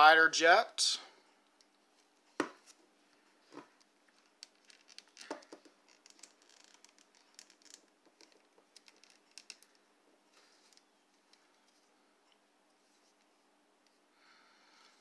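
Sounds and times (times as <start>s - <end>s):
plastic clicks and scrapes: 3.7s - 9.8s.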